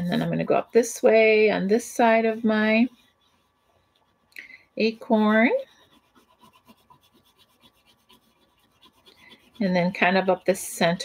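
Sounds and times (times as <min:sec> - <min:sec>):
oil pastel scribbling on paper: 0:00.0 - 0:11.0.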